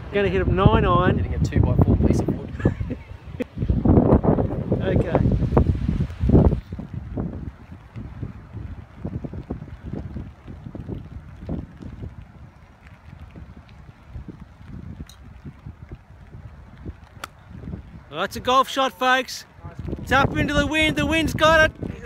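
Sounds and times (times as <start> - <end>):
wind buffeting microphone: 0.0 - 22.0
golf club striking ball: 17.1 - 17.4.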